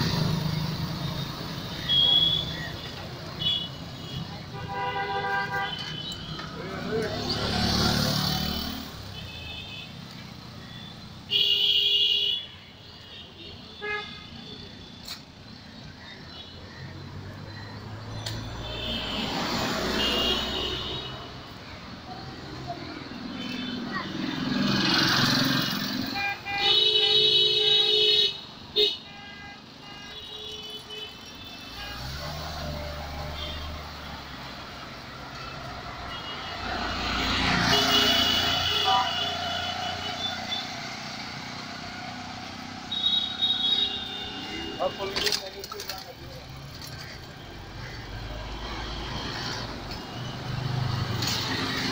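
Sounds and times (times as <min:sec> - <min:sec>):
vehicles passing: 0:00.0 - 0:11.9, 0:14.4 - 0:28.8, 0:30.7 - 0:51.9
loud car horn: 0:03.4 - 0:06.1, 0:11.3 - 0:12.6, 0:25.9 - 0:33.9, 0:35.9 - 0:40.8.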